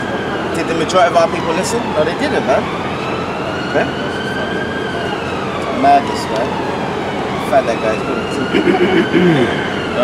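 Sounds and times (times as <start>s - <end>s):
city street traffic: 0.0s - 10.0s
distant siren: 0.0s - 10.0s
man laughing: 8.4s - 9.6s.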